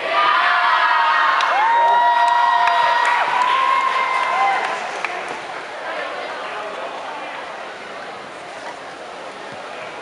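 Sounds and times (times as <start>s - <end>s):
audience cheering and screaming: 0.0s - 4.9s.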